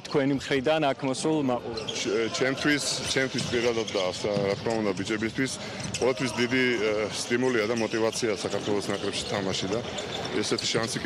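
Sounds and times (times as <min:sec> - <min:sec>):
man talking: 0:00.0 - 0:11.0
balls bouncing on hard floor: 0:03.2 - 0:06.4.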